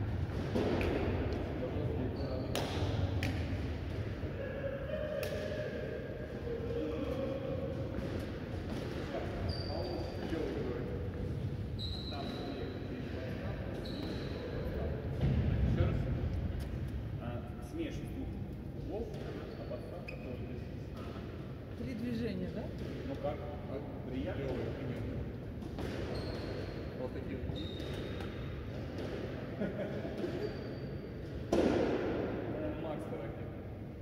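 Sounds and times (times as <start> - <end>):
indistinct voices echoing: 3.8 - 8.9
high squeaks: 9.4 - 10.4, 11.8 - 12.9, 13.7 - 14.7.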